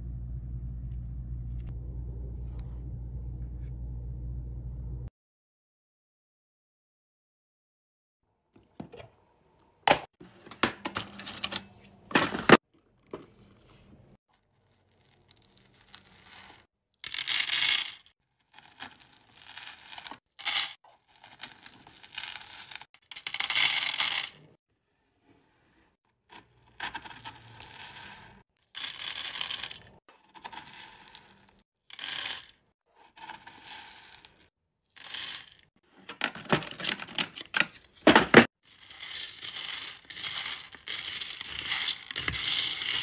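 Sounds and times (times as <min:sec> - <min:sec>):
metal scoop digging into beads: 0:14.6 - 0:24.4, 0:26.6 - 0:34.4, 0:35.0 - 0:35.6, 0:38.7 - 0:43.0
wax beads rattling: 0:38.7 - 0:43.0.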